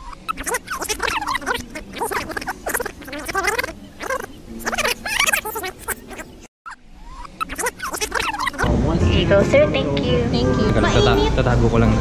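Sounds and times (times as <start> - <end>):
indistinct voices talking: 0.3 - 6.5.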